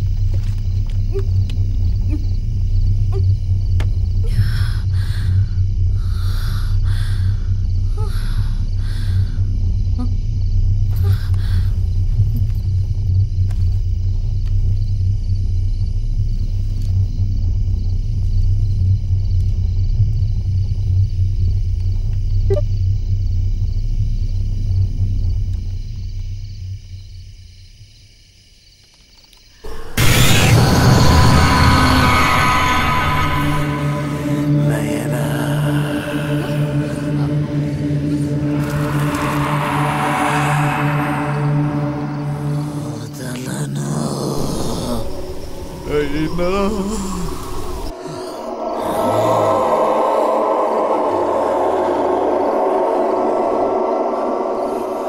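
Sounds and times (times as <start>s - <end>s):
low rumbling drone: 0.0s - 27.6s, 29.6s - 55.0s
loud musical stinger crash: 30.0s - 34.6s
thin sustained high tones: 30.0s - 43.1s.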